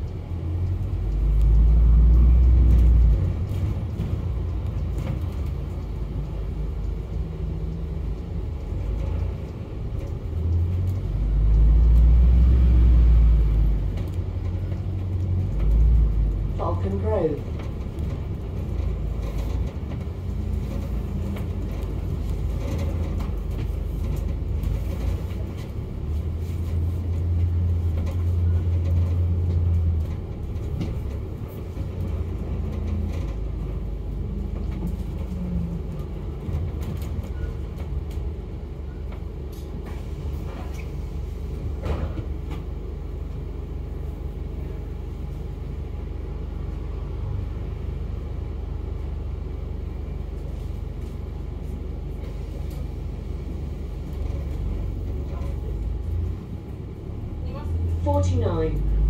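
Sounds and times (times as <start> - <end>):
bus engine and road rumble: 0.0 - 59.0.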